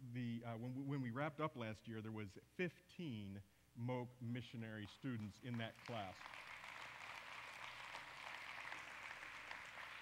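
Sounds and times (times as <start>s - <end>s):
congregation applauding: 4.8s - 10.0s.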